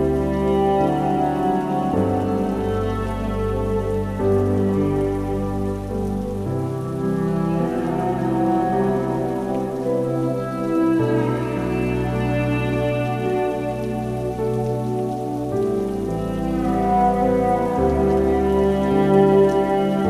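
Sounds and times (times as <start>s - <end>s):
cello and piano music: 0.0s - 20.0s
steady rain: 0.0s - 20.0s.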